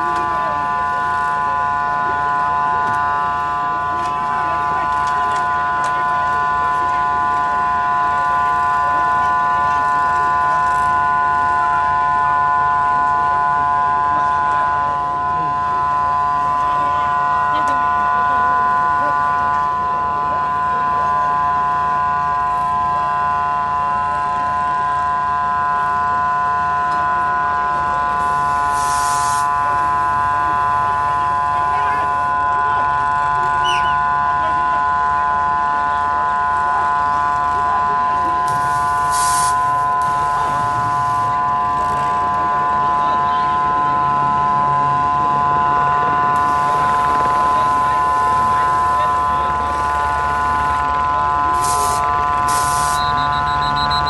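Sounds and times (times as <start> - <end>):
machine whine over low hum: 0.0 - 54.0
hissing bursts: 28.7 - 29.4, 38.5 - 39.6, 51.5 - 54.0.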